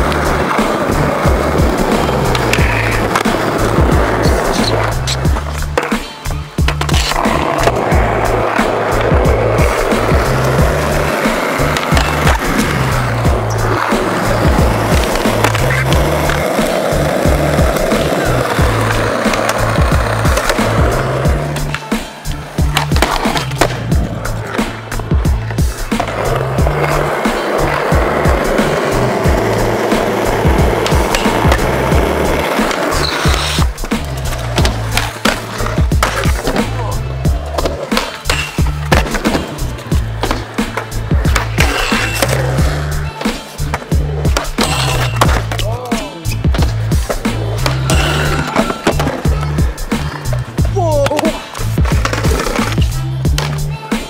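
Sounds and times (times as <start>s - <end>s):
music with repeating bass line: 0.0s - 38.0s, 38.6s - 54.0s
skateboard clacks: 0.0s - 54.0s
skateboard wheels rolling on concrete: 0.0s - 54.0s.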